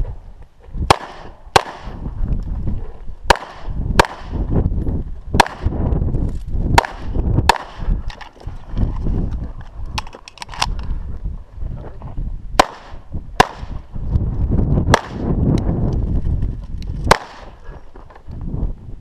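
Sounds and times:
pistol shots: 0:00.9 - 0:02.0, 0:03.3 - 0:04.4, 0:05.4 - 0:05.8, 0:06.7 - 0:08.0, 0:12.6 - 0:13.8, 0:14.9 - 0:15.3, 0:17.1 - 0:17.6.

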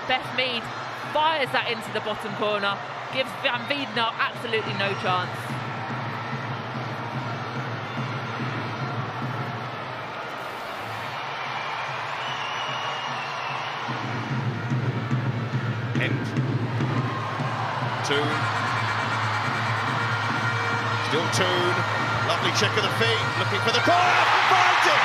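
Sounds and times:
stadium crowd cheering: 0:00.0 - 0:25.0.

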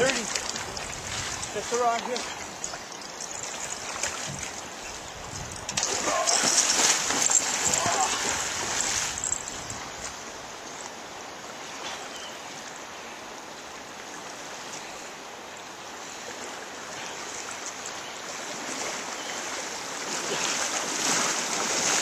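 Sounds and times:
water splashing: 0:00.0 - 0:10.2, 0:18.3 - 0:22.0
river current rushing: 0:00.0 - 0:22.0.

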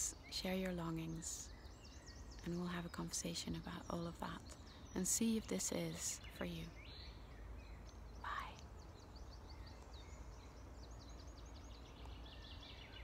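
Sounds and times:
birdsong: 0:00.0 - 0:13.0
faint low rumble: 0:00.0 - 0:13.0.

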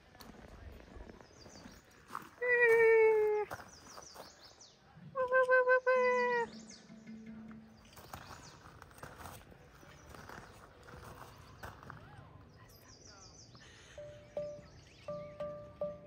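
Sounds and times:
faint high chirps: 0:12.6 - 0:16.0.

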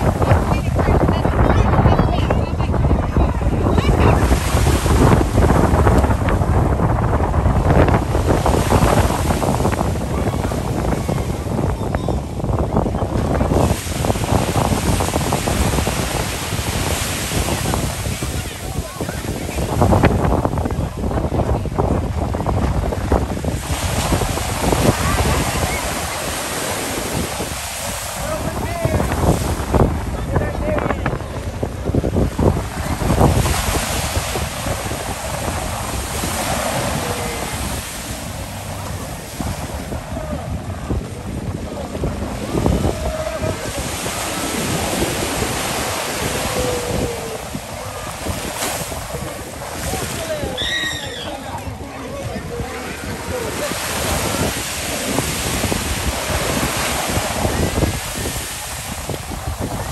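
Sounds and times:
ocean surf washing: 0:00.0 - 0:59.9
wind on microphone: 0:00.0 - 0:59.9.

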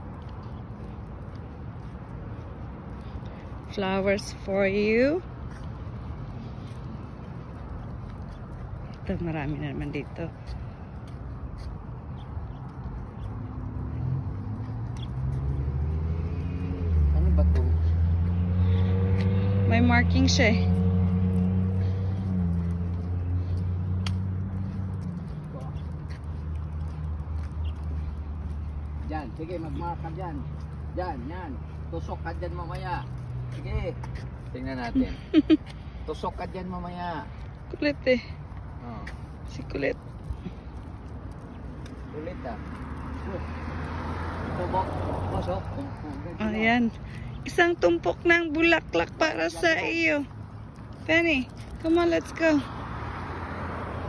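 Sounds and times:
car passing: 0:00.0 - 0:54.0
vehicle engine humming: 0:00.0 - 0:54.0.

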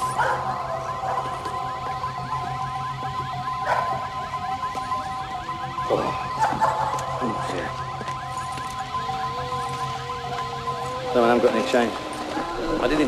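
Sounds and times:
car alarm warbling: 0:00.0 - 0:13.0.

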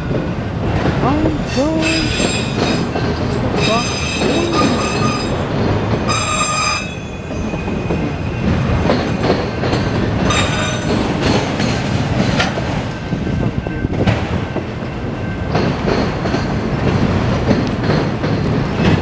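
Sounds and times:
rumble of train wheels on rail: 0:00.0 - 0:19.0
wheels clacking over rail joints: 0:00.0 - 0:19.0
high-pitched wheel squeals: 0:06.1 - 0:07.6.

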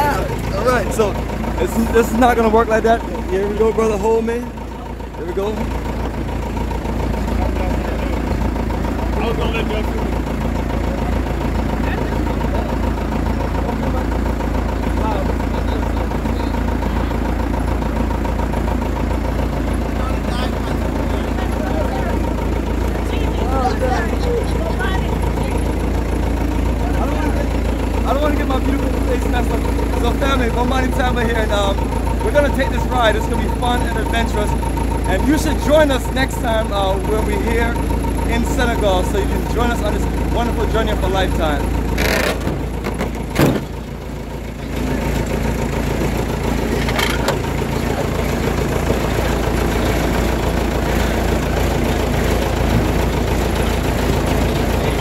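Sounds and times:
people talking: 0:00.0 - 0:06.1, 0:07.2 - 0:18.1, 0:19.9 - 0:25.8, 0:26.4 - 0:41.7, 0:44.5 - 0:45.6, 0:46.6 - 0:55.0
truck engine idling: 0:00.0 - 0:55.0.

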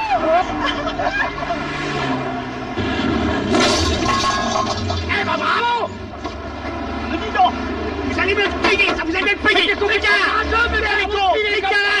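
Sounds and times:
vehicle rushing by: 0:00.0 - 0:11.5
steady engine hum: 0:00.0 - 0:12.0.

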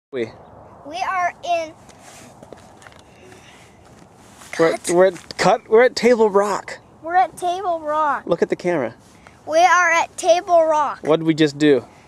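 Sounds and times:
steady low hiss: 0:00.2 - 0:12.0
footsteps on rocky ground: 0:01.8 - 0:05.5.

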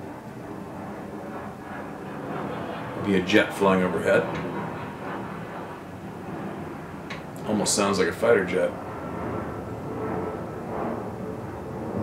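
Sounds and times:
jet aircraft flying overhead: 0:00.0 - 0:12.0.

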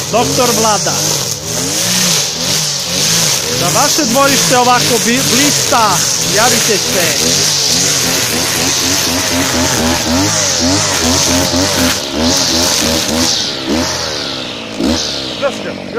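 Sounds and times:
brushcutter engine revving: 0:00.0 - 0:15.9
nylon line cutting grass: 0:00.0 - 0:15.9.

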